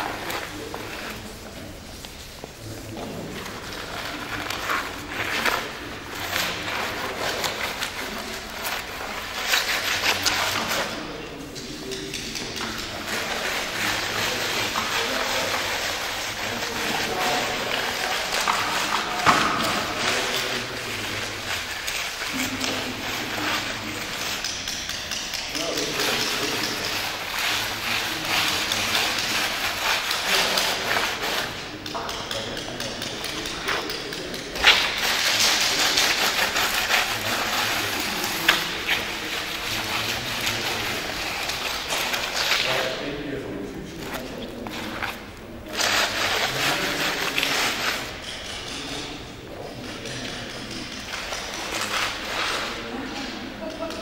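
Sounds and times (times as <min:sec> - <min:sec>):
chalk scratching on concrete: 0:00.0 - 0:53.7
voices talking in echoing hall: 0:00.0 - 0:54.0.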